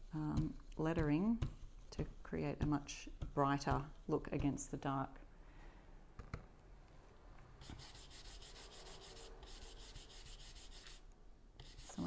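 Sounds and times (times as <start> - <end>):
brush scratching through stencil: 7.6 - 12.0.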